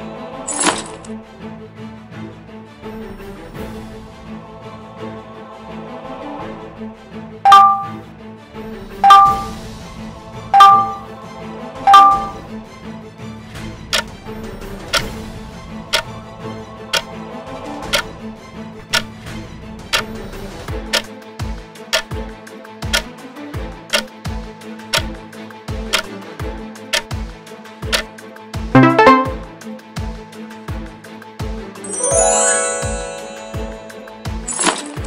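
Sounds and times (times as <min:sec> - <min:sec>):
background music: 0:00.0 - 0:19.1, 0:28.6 - 0:29.9, 0:31.6 - 0:35.0
countdown timer ticking: 0:07.5 - 0:08.0, 0:09.0 - 0:09.6, 0:10.6 - 0:11.1, 0:11.9 - 0:12.5, 0:28.8 - 0:29.6, 0:32.0 - 0:34.5
short chime: 0:07.5 - 0:08.0, 0:09.0 - 0:09.6, 0:10.6 - 0:11.1, 0:11.9 - 0:12.4, 0:28.8 - 0:29.5, 0:31.9 - 0:34.7.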